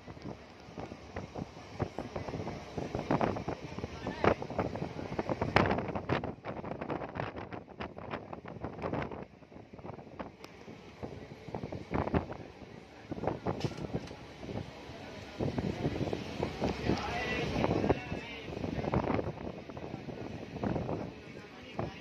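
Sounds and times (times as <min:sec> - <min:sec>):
train rattling and clattering: 0:00.0 - 0:22.0
wind buffeting microphone: 0:00.0 - 0:22.0.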